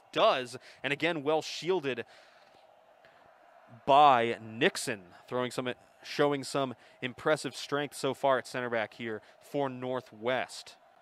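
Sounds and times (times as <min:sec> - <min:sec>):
man's voice: 0:03.8 - 0:10.8.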